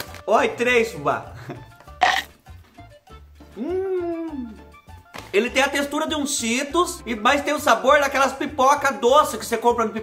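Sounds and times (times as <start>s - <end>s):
background music: 0.0s - 10.0s
man humming mmm: 3.5s - 4.7s.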